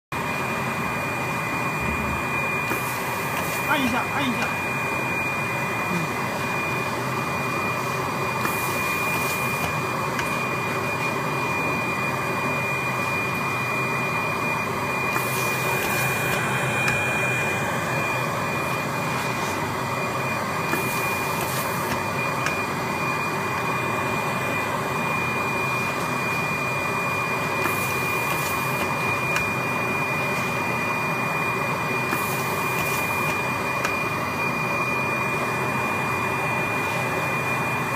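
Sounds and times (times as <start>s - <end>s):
blower whining: 0.2s - 37.9s.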